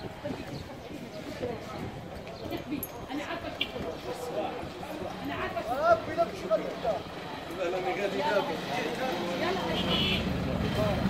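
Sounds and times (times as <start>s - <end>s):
people talking indistinctly: 0.0s - 11.0s
street background noise: 0.0s - 11.0s.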